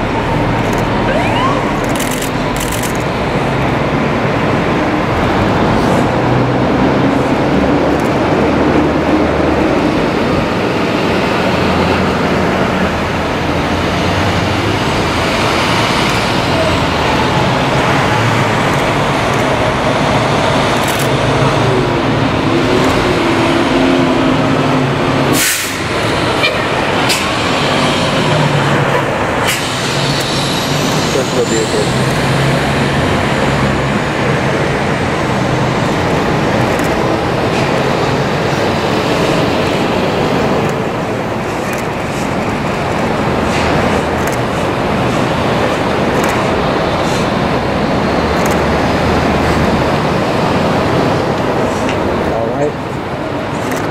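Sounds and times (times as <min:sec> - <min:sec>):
fire engines driving past: 0:00.0 - 0:53.9
air-brake hisses: 0:25.4 - 0:25.9, 0:29.4 - 0:32.1.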